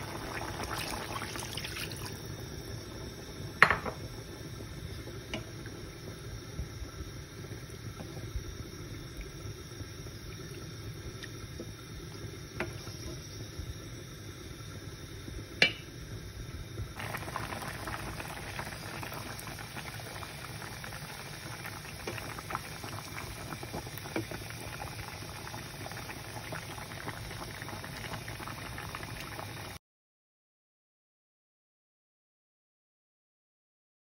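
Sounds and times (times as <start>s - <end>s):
curry bubbling in a pan: 0.0s - 29.8s.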